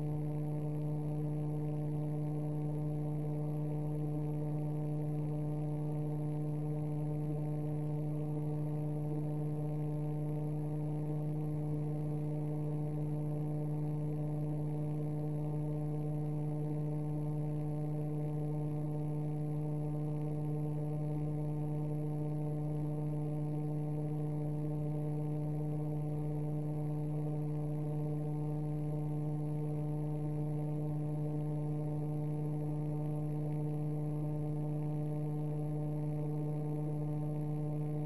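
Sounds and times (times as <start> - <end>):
electrical hum: 0.0 - 38.0.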